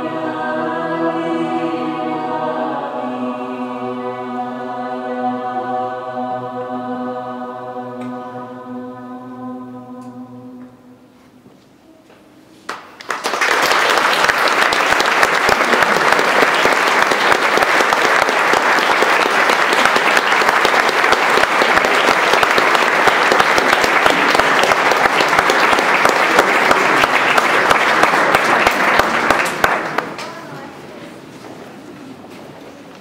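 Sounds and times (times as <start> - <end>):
audience applauding: 12.7 - 30.4.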